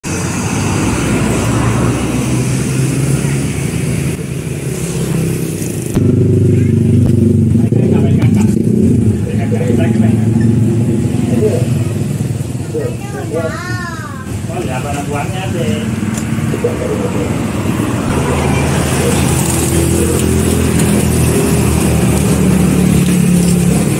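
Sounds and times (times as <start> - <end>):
road traffic passing: 0.0 - 23.9
background voices: 7.7 - 23.1.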